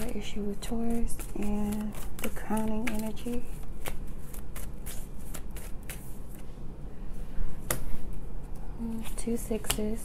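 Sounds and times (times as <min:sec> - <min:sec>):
cards being shuffled: 0:00.0 - 0:06.5.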